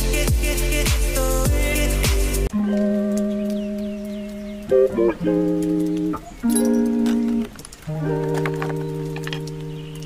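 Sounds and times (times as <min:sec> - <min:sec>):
music with long held notes: 0:00.0 - 0:06.1.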